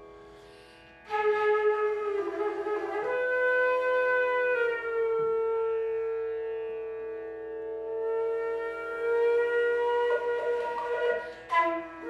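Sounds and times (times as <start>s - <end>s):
flute long low note: 1.1s - 7.1s, 7.7s - 12.0s.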